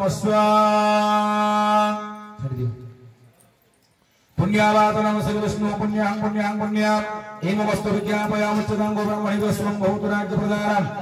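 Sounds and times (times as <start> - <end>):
low man's voice: 0.0 - 3.0, 4.4 - 11.0
man chanting: 0.0 - 3.0, 4.4 - 11.0.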